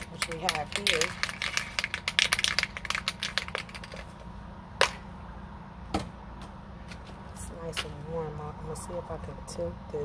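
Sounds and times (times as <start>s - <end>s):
spray can ball rattling: 0.0s - 4.2s.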